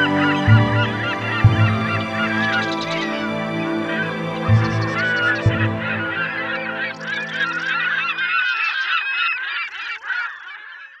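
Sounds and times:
low music chords: 0.0 - 8.0
flock of birds honking: 0.0 - 11.0.

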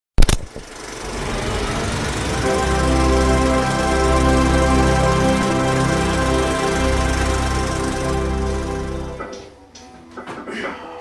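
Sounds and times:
rising noise swell: 0.4 - 9.5
intro music: 0.5 - 9.8.

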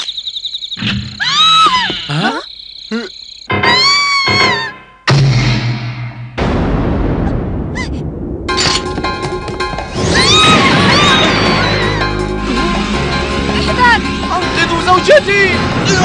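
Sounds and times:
high-pitched cartoon shrieks: 1.1 - 4.9, 10.0 - 12.0
dramatic music: 4.4 - 16.0
sudden loud hit with rumble: 5.1 - 11.6
dense noisy crashing: 5.2 - 11.7.

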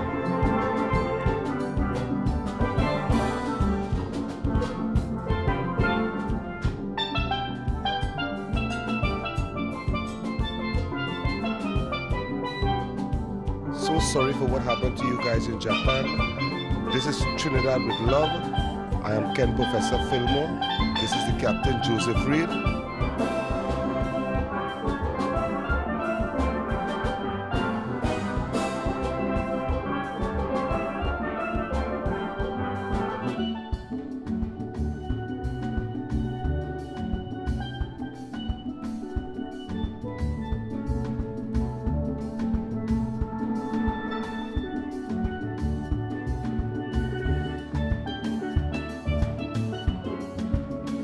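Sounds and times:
steady drum beat: 0.0 - 50.9
steelpans playing melody: 0.0 - 51.0.

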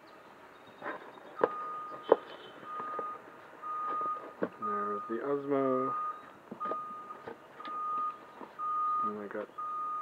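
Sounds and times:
truck reversing alarm beeping: 0.6 - 10.0.

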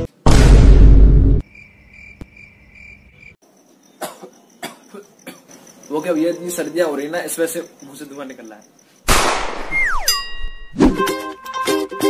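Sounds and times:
cartoon crash hit: 0.0 - 1.4
descending whistle glide: 9.7 - 10.3
ringing ding: 10.0 - 10.7.

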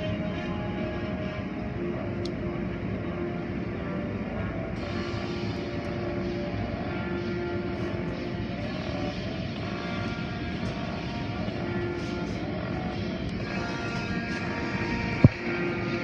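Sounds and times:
car wash machinery rumble: 0.0 - 16.0.

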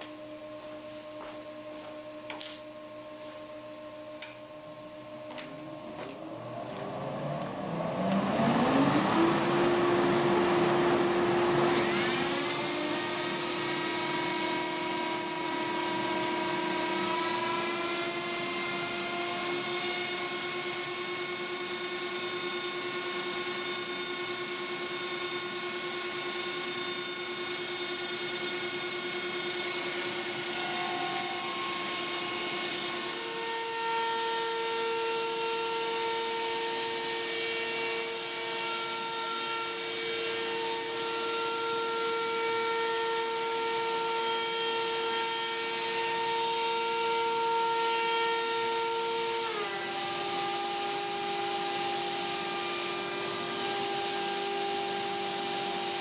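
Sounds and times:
dust collector drone: 0.0 - 43.8, 49.4 - 56.0
router spinning with rising whine: 0.0 - 56.0
router bit cutting wood: 5.2 - 56.0.

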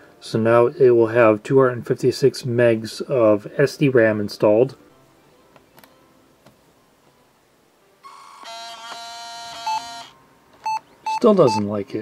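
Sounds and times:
laptop error beeps: 8.1 - 11.8.

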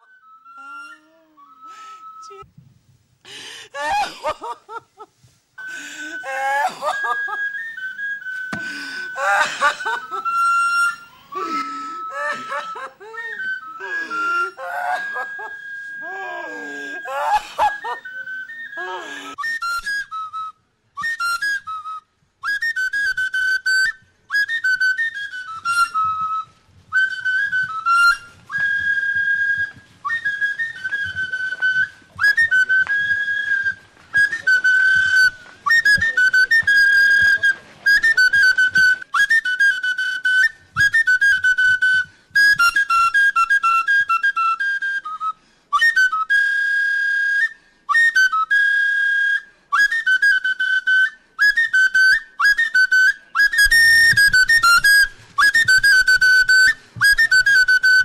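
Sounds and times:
flute-like melody: 0.0 - 2.6, 3.8 - 58.0.

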